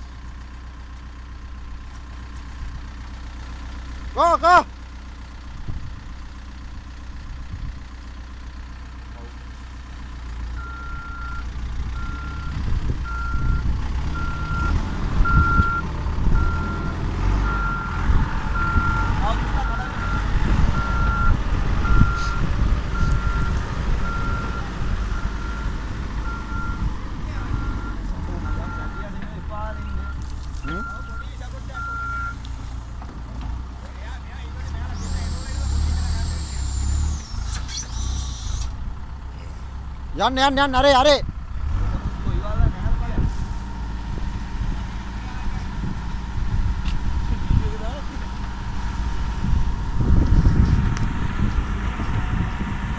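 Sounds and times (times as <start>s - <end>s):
diesel engine running: 0.0s - 52.9s
reversing alarm beeping: 10.6s - 29.1s, 29.7s - 32.4s.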